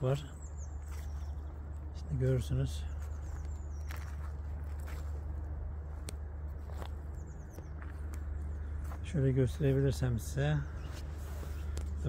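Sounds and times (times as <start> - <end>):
steady low rumble: 0.0 - 12.0
footsteps on frozen grass: 0.4 - 12.0.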